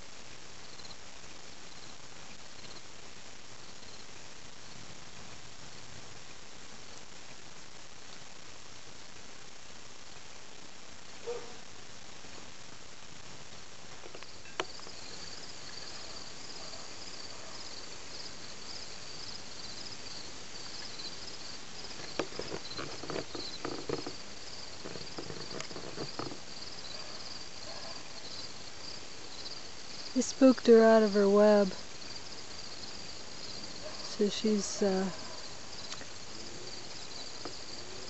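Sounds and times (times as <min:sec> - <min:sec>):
background hiss: 0:00.0 - 0:38.0
insect chirping: 0:00.6 - 0:02.9, 0:03.6 - 0:04.9, 0:14.0 - 0:38.0
soft knocks and rustles: 0:21.8 - 0:24.2, 0:24.8 - 0:26.4.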